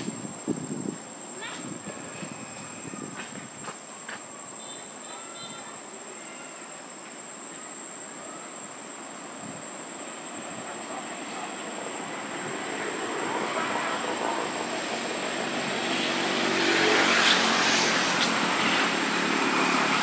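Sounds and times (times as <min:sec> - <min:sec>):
distant engine passing by: 0:10.3 - 0:20.0.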